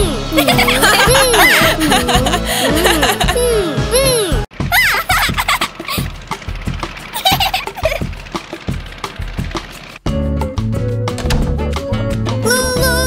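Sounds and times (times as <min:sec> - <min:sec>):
background music with steady beat: 0:00.0 - 0:13.0
cartoon voices giggling: 0:00.3 - 0:06.1, 0:07.1 - 0:08.1.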